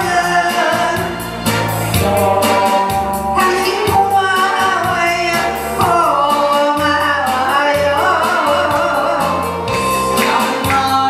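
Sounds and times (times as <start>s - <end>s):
man and woman singing duet: 0.0s - 1.2s, 1.9s - 11.0s
backing track with drum beat: 0.0s - 11.0s.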